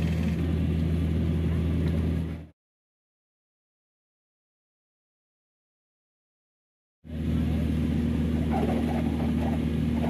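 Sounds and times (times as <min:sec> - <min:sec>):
engine humming steadily: 0:00.0 - 0:02.6, 0:07.0 - 0:10.0.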